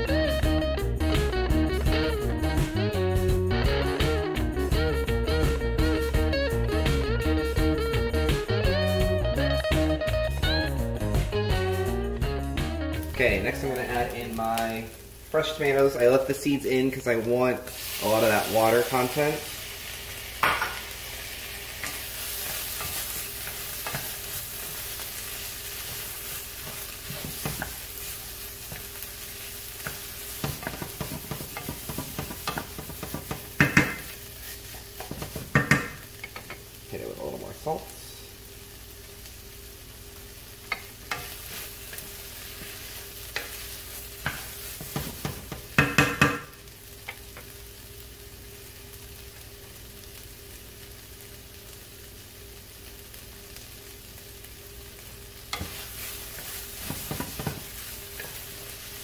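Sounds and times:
vegetables sizzling in a pan: 4.7 - 59.0
spoon knocking against pan: 29.8 - 34.1, 35.0 - 36.6, 44.2 - 46.5.

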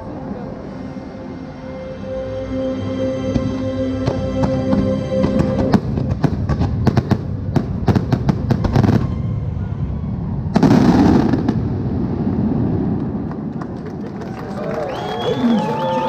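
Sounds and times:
low rumble: 0.0 - 14.4
fireworks bangs: 5.6 - 9.4, 10.4 - 13.9
loud firework burst: 10.2 - 13.2.

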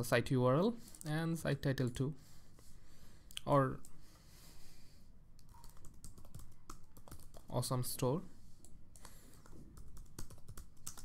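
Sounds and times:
typing on computer keyboard: 5.4 - 7.5, 9.0 - 11.0.

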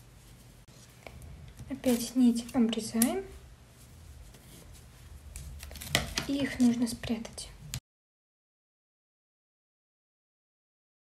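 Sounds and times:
fabric rustling: 1.7 - 6.9
scissors cutting yarn: 1.8 - 3.3.

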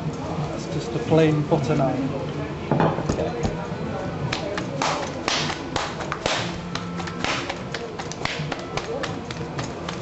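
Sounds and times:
dough slapped between palms: 4.3 - 10.0.

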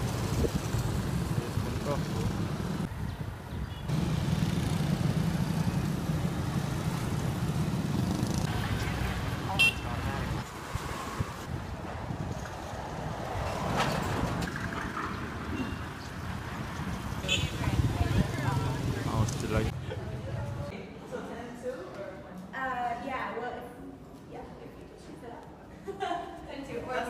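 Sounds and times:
traffic rumble and road noise: 0.0 - 20.8.

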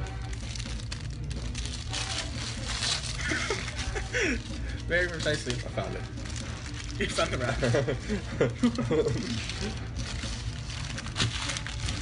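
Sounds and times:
paper wrapper crinkling: 0.0 - 12.0.

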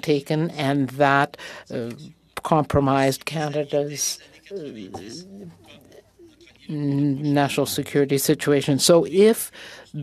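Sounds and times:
two people talking: 0.0 - 10.0.

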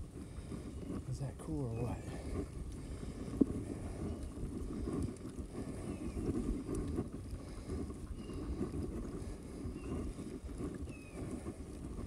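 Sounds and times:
bike tyres on dirt trail: 0.0 - 12.0
wind buffeting microphone: 0.0 - 12.0.

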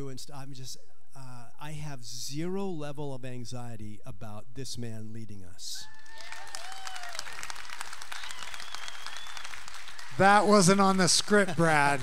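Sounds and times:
audience applauding: 6.0 - 12.0.

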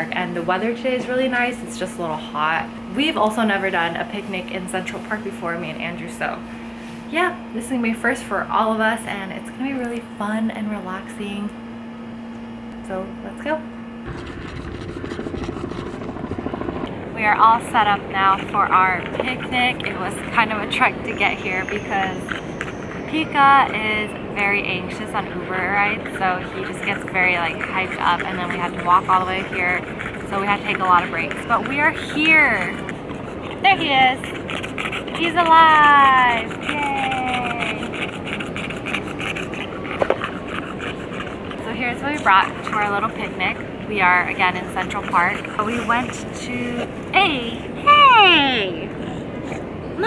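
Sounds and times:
dog panting: 14.1 - 47.8, 48.8 - 50.0
distant traffic hum: 14.1 - 50.0.

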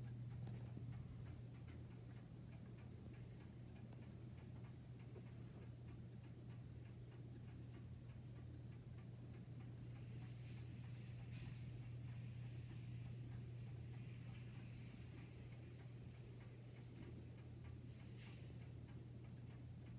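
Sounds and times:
low steady hum: 0.0 - 19.9
pendulum clock ticking: 0.0 - 19.9.

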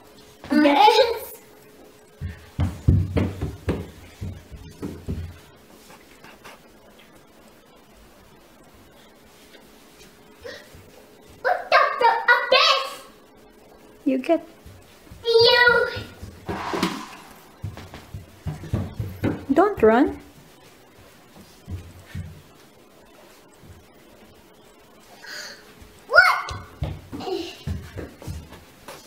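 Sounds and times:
child's footsteps on floor: 2.2 - 6.4, 14.5 - 16.5, 17.6 - 23.9, 25.7 - 29.0.

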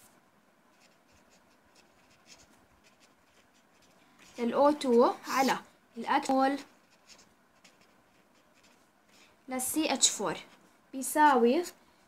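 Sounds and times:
marker writing on paper: 0.7 - 5.6, 6.2 - 8.8.

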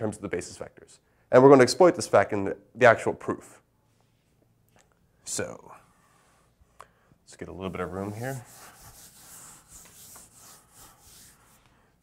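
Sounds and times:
chalkboard eraser rubbing: 7.6 - 11.7.

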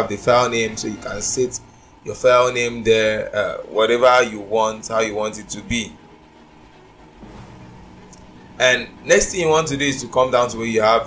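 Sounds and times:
low hiss: 0.0 - 11.0
thin constant hum: 0.0 - 11.0.

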